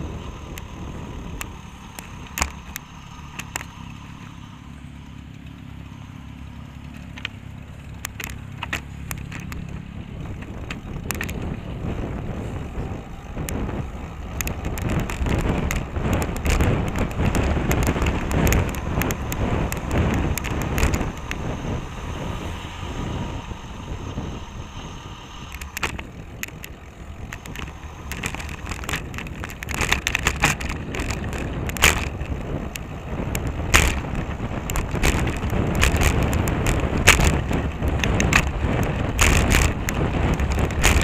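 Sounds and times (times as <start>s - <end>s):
wind buffeting microphone: 0.0s - 4.2s, 6.8s - 41.0s
bicycle road rumble: 0.0s - 41.0s
small clicks and rattles: 1.3s - 4.3s, 6.8s - 22.8s, 25.5s - 41.0s.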